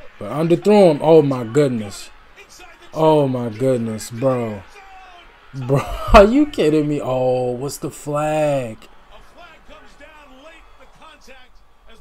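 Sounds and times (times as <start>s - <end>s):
male sports announcer speaking: 0.0s - 12.0s.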